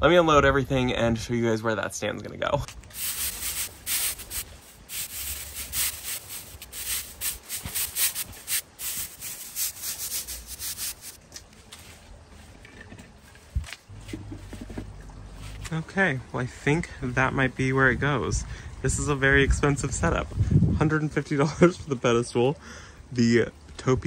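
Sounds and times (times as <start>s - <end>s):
broom sweeping concrete: 2.9s - 11.9s.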